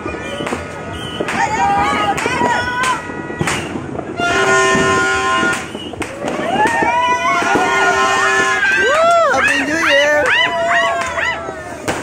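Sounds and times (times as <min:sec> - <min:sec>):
firecrackers banging: 0:00.0 - 0:12.0
rising whistles: 0:00.2 - 0:01.3, 0:05.6 - 0:06.1
horn blast: 0:04.1 - 0:05.8, 0:07.2 - 0:09.0.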